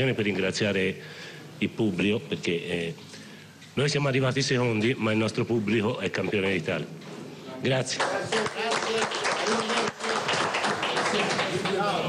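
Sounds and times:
people applauding: 7.9s - 12.0s
men talking: 11.5s - 12.0s.

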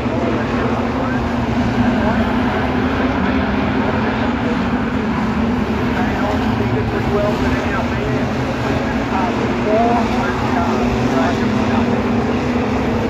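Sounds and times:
indistinct voices: 0.0s - 12.7s
race car engines droning: 0.0s - 13.0s.

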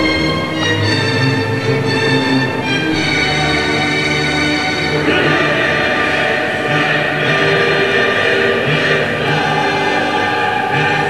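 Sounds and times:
choir singing long held chords: 0.0s - 11.0s.

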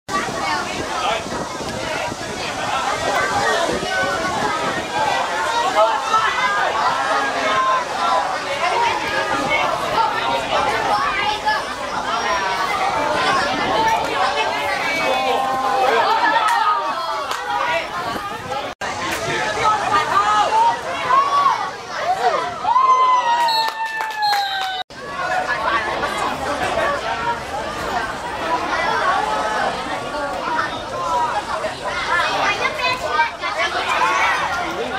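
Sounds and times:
voices talking and calling out: 0.1s - 34.9s.

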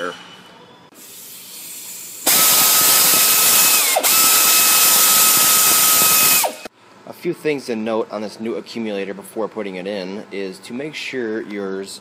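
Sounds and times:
loud air hiss: 0.9s - 6.7s
air ratchet whine: 1.0s - 6.7s.

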